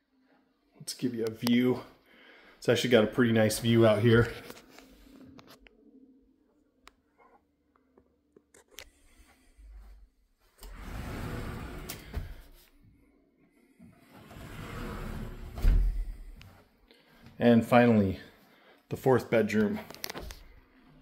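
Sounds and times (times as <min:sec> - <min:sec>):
doors rustling and swishing: 0:09.8 - 0:12.8, 0:13.9 - 0:16.8.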